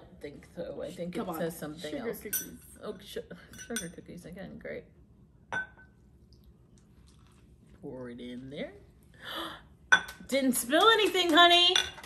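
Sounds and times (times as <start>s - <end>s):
ceramic tableware clink: 2.3s - 2.7s, 5.5s - 5.9s, 9.9s - 10.2s, 11.8s - 12.0s.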